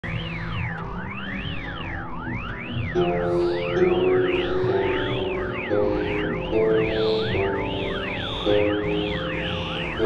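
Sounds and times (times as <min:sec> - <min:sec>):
low steady drone tones: 0:00.0 - 0:10.0
synthesizer tone sweeping like siren: 0:00.0 - 0:10.0.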